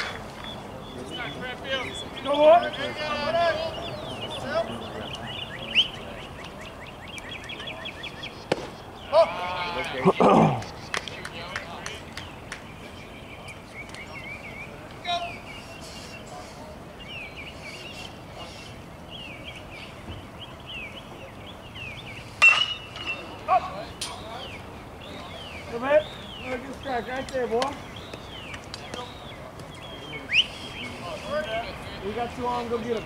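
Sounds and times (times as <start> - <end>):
outdoor background noise: 0.0 - 33.0
songbird chirping: 0.0 - 33.0
sharp crack: 8.5 - 8.8.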